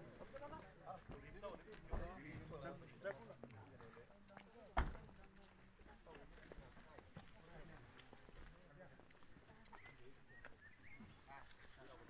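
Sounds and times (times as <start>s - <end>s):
distant chatter of people: 0.0s - 12.0s.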